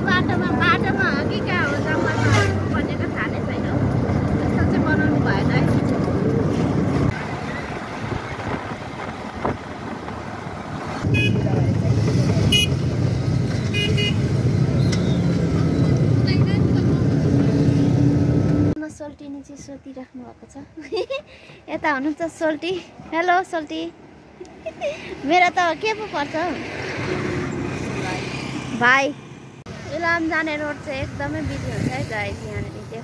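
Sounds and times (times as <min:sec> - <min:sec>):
voices: 0:00.0 - 0:06.3, 0:18.8 - 0:26.9, 0:29.8 - 0:33.0
low engine hum: 0:00.0 - 0:18.8
road and wind noise: 0:00.0 - 0:33.0.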